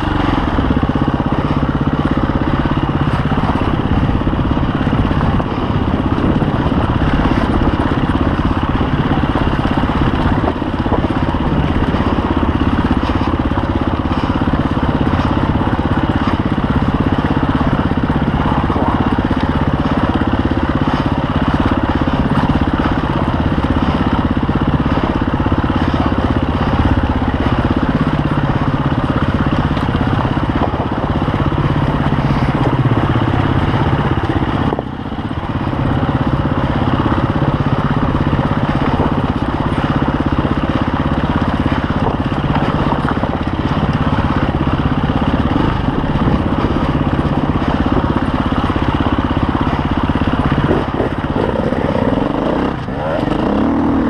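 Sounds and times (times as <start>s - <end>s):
motorcycle engine running under load: 0.0s - 54.0s.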